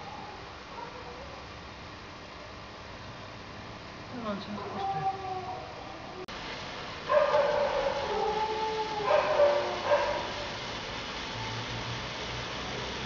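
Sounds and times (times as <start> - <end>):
firework fountain hissing: 6.3 - 13.0.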